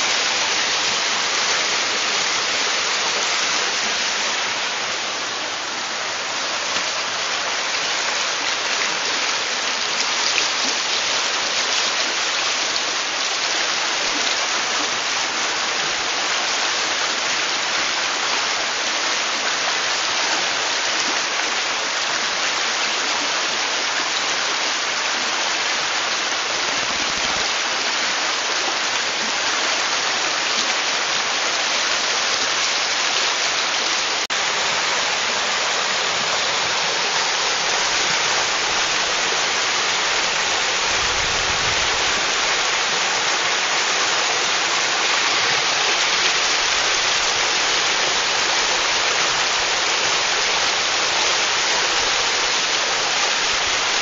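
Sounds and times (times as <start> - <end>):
stream rushing over rocks: 0.0 - 54.0.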